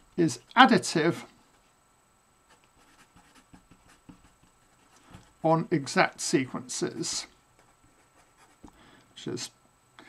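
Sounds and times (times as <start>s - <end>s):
marker scratching on paper: 2.5s - 5.2s.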